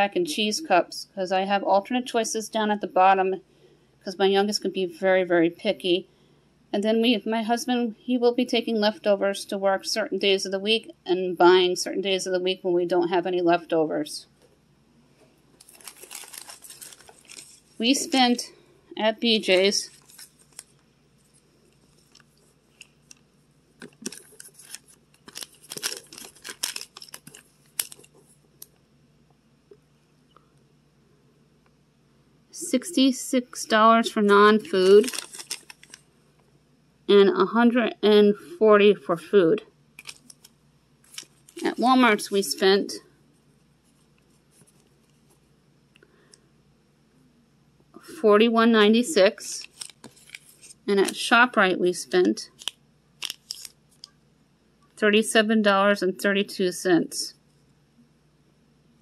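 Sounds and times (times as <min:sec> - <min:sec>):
paper receipts rustling: 0:15.5 - 0:18.5, 0:19.2 - 0:23.2, 0:23.8 - 0:28.7, 0:33.6 - 0:36.1, 0:40.0 - 0:42.9, 0:49.2 - 0:51.4, 0:52.1 - 0:54.1.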